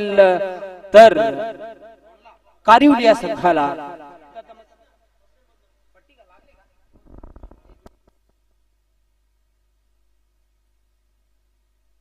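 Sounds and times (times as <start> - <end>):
microphone handling crackles: 6.9 - 8.4.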